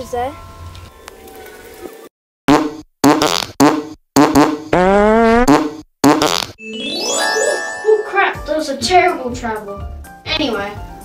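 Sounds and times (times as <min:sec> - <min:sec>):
fart sound effects: 0:02.5 - 0:06.6.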